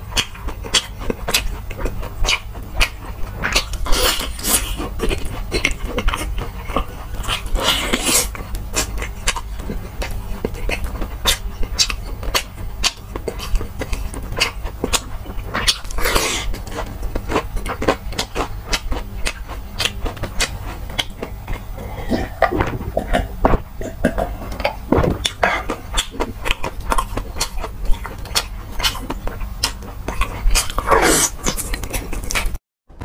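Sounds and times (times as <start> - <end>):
crunchy chewing: 0.1 - 32.6
wet mouth sounds: 0.2 - 32.5
hissing rush of breath: 21.7 - 23.2.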